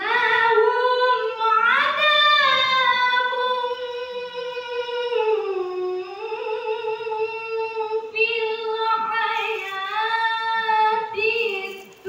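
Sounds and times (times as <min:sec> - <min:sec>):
person reciting melodically: 0:00.0 - 0:12.0.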